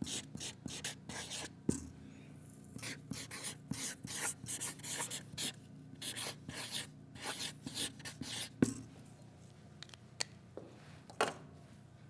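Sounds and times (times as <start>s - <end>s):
marker writing on paper: 0.0s - 1.5s, 2.8s - 8.6s.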